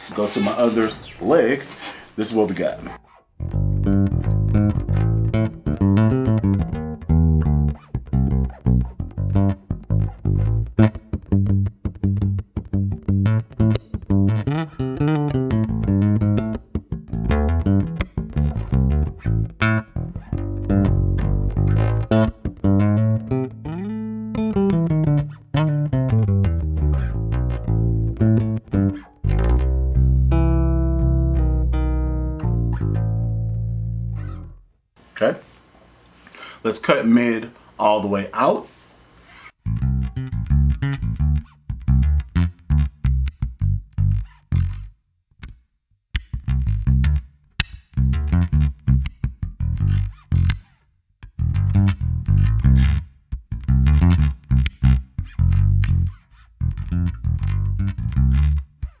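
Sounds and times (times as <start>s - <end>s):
electric bass played with fingers: 2.8s - 34.7s, 39.6s - 59.0s.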